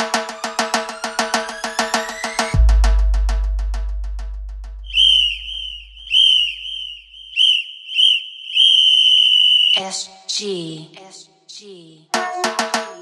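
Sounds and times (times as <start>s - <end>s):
deep bass boom: 2.6s - 6.3s
shrill whistle blasts: 4.8s - 10.0s.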